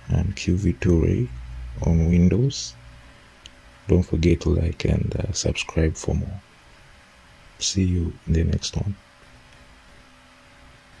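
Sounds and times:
faint background hiss: 0.0s - 11.0s
faint steady hum: 0.0s - 11.0s.

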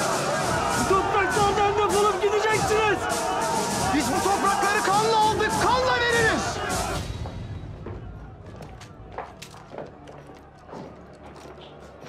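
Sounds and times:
footsteps on tiled floor: 7.1s - 12.0s.

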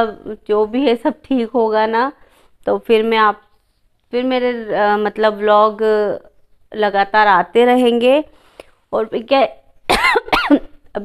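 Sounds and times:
woman coughing: 9.9s - 10.8s.

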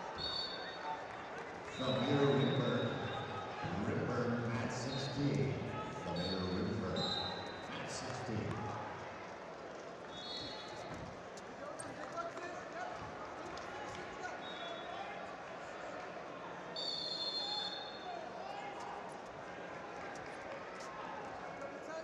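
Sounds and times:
indistinct voices in a hall: 0.0s - 22.0s.

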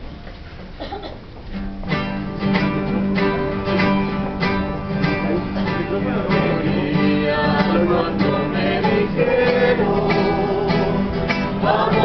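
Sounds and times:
acoustic guitars strumming: 1.4s - 12.0s.

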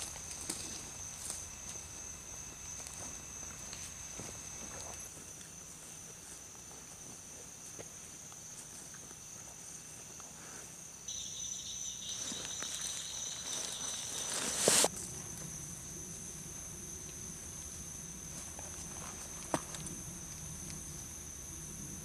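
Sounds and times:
insects chirring high drone: 0.0s - 22.0s
lower-pitched insect chirring: 11.1s - 18.1s.

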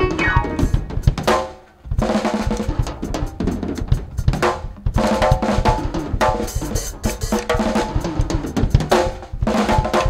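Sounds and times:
sustained keyboard chords: 0.0s - 1.2s
live band playing: 0.0s - 1.7s, 2.4s - 9.1s
drum kit hits: 0.0s - 10.0s.

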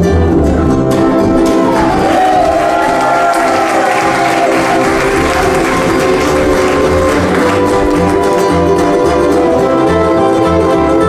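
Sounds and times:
string band playing swing: 0.0s - 11.0s
audience applauding: 1.3s - 9.5s.

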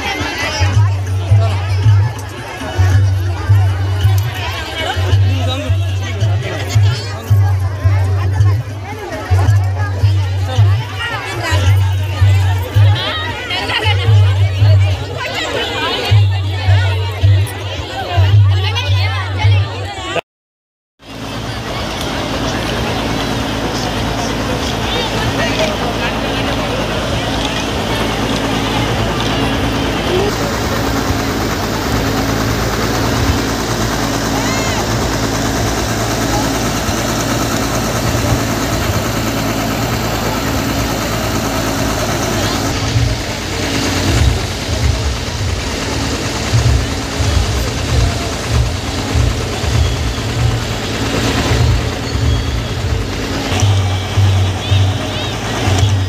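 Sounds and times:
crowd noise: 0.0s - 20.2s, 21.0s - 56.0s
loud distorted amplified music: 42.6s - 56.0s.

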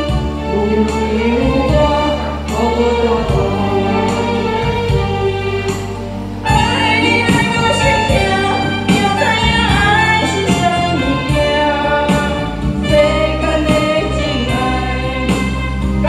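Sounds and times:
instrumental backing music: 0.0s - 16.0s
woman singing through a microphone: 0.5s - 5.8s, 6.5s - 15.7s.

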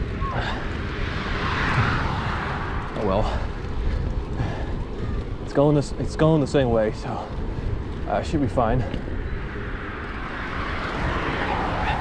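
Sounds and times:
tyres rolling on dirt path: 0.0s - 12.0s
wind buffeting microphone: 0.0s - 12.0s.

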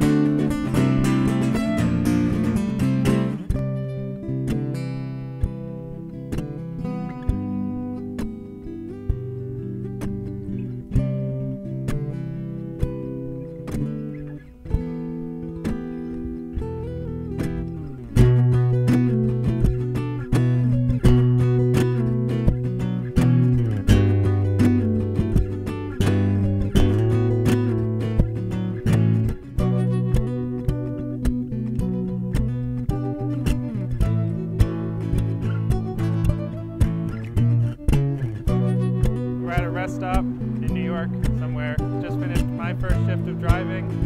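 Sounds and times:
looped plucked guitar notes: 0.0s - 44.0s
low bass notes: 16.6s - 44.0s.

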